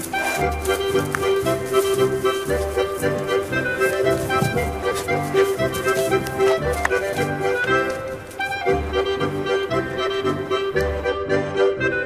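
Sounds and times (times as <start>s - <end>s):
accordion melody: 0.0s - 12.0s.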